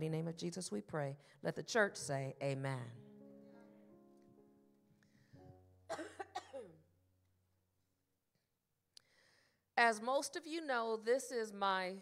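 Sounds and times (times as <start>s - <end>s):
woman speaking: 0.0s - 3.0s, 9.8s - 12.0s
woman coughing: 5.9s - 6.9s.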